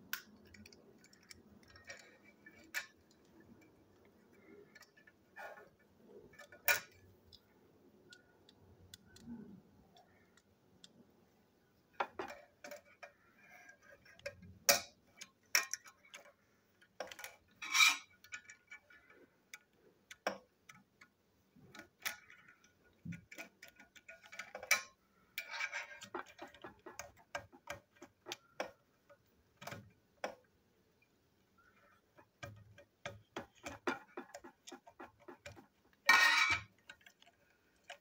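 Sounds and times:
plastic toy parts clicking: 0.0s - 11.0s, 11.9s - 38.0s.

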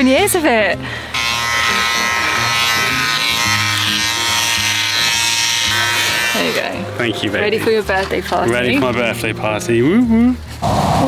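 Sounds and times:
electric shaver buzzing: 0.0s - 7.0s
background music: 0.0s - 11.0s.

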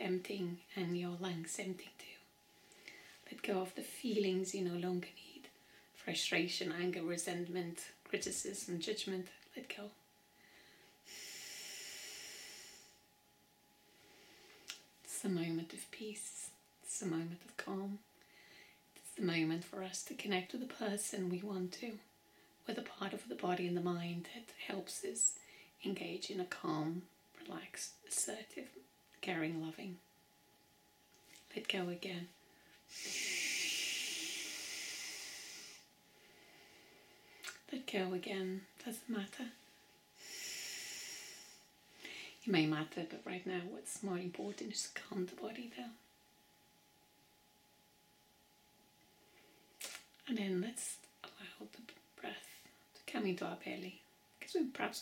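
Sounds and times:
woman exhaling slowly: 10.5s - 13.0s, 32.9s - 35.9s.

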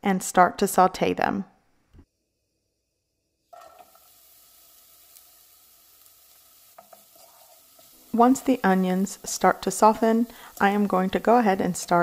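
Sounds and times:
onion sizzling in oil: 2.1s - 12.0s.

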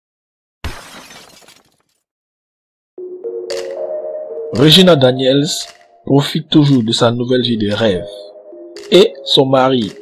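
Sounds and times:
glass shattering and tinkling: 0.7s - 1.8s.

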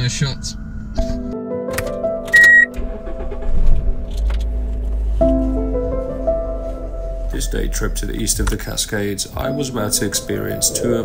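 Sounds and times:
car engine starting and idling: 0.0s - 9.4s
background music: 0.0s - 11.0s.

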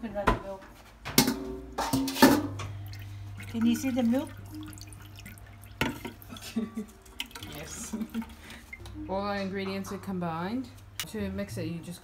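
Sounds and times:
low steady hum: 1.0s - 12.0s.

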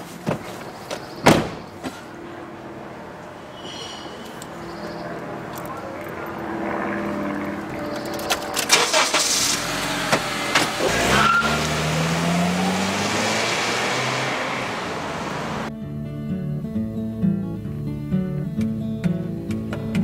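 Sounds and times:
car engine starting and accelerating: 4.8s - 15.7s
acoustic guitar music: 15.7s - 20.0s.

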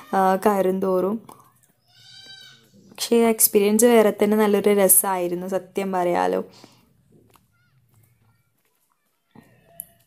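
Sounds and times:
faint bleating animal call: 1.8s - 2.9s.

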